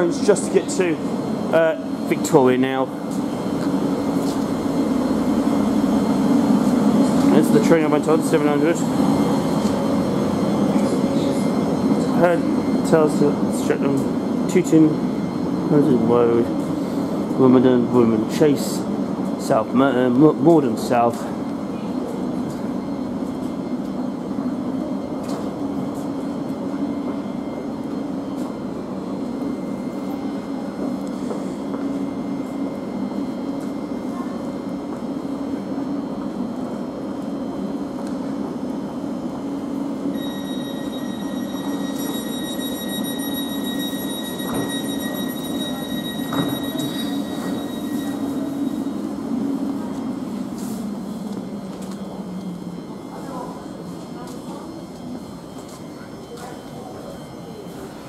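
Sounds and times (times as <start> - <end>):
high steady whine: 0.0 - 58.0
train equipment low hum: 0.0 - 58.0.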